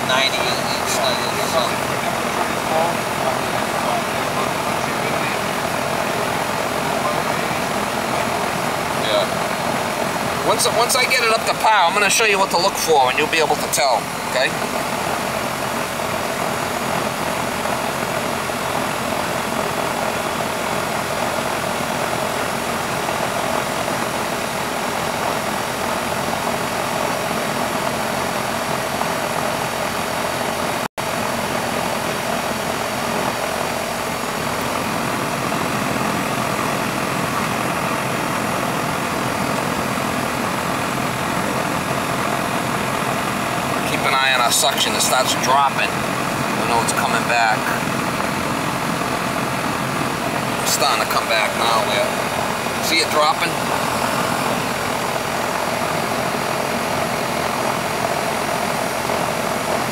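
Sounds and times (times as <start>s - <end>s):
air conditioner unit running: 0.0s - 59.9s.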